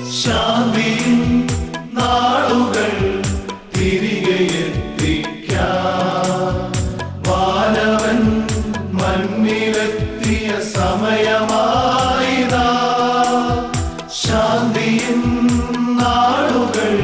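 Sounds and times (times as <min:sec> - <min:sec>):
men singing: 0:00.0 - 0:17.0
orchestrated backing music: 0:00.0 - 0:17.0
steady drum beat: 0:00.0 - 0:17.0.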